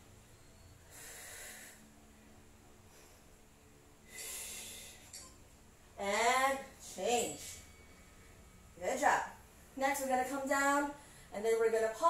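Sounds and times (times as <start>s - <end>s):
woman breathing with effort: 0.6s - 2.2s, 2.8s - 5.2s, 11.0s - 11.4s.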